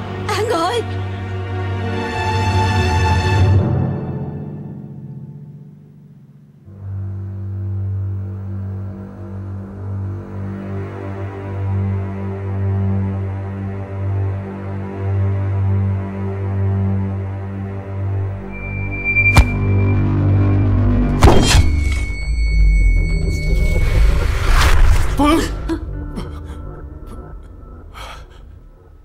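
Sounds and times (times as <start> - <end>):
low drone film score: 0.0 - 29.0
noisy swell: 18.1 - 21.2
sharp hit: 18.2 - 25.2.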